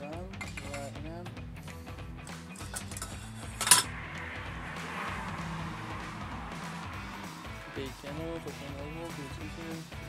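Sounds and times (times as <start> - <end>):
metal cookware clattering: 0.3 - 0.9, 2.5 - 3.9.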